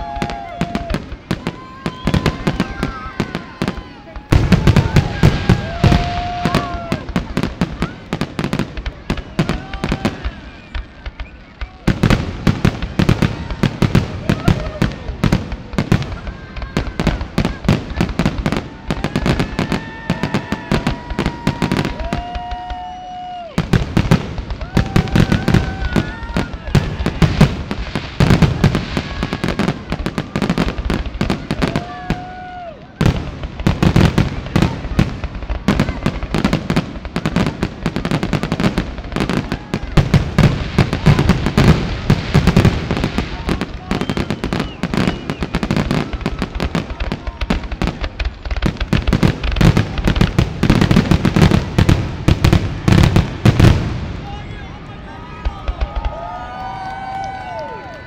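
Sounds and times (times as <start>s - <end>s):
fireworks cracking and banging: 0.0s - 58.0s.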